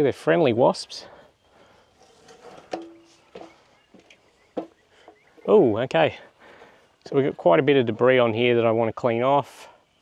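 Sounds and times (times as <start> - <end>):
feet knocking on ladder rungs: 2.7 - 5.2.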